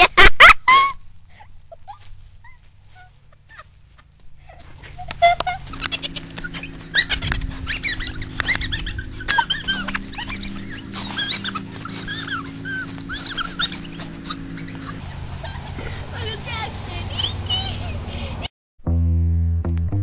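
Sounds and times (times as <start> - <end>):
boy laughing and squealing: 0.0 - 18.5.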